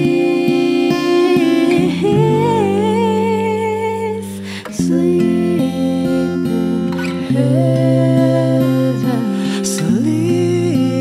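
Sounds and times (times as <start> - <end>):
acoustic guitar strumming: 0.0 - 11.0
person singing: 0.0 - 11.0.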